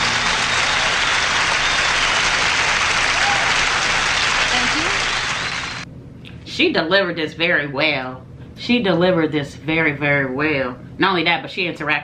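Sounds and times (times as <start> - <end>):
people shouting: 0.0 - 5.1
audience applauding: 0.0 - 5.8.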